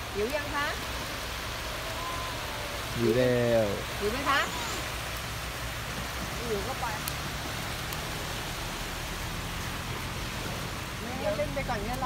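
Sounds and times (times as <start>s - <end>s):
surf washing onto beach: 0.0s - 12.0s.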